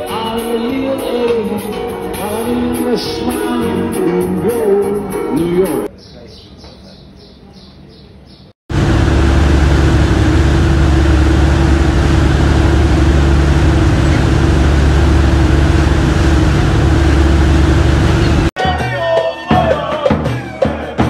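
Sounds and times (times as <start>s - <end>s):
boat engine droning: 8.7s - 18.5s
rushing boat wake: 8.7s - 18.5s.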